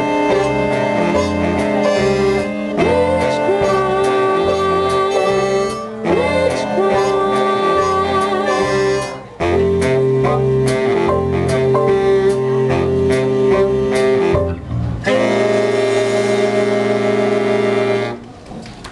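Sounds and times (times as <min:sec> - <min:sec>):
big band jazz playing: 0:00.0 - 0:18.3.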